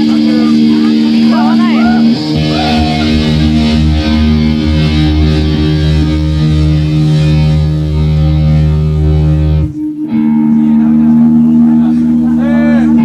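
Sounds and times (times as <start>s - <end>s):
bass guitar: 0.0s - 13.0s
distorted electric guitar chord: 0.0s - 13.0s.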